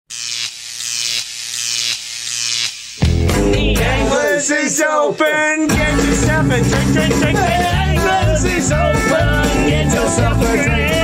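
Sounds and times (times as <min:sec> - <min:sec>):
electric buzz: 0:00.1 - 0:03.8.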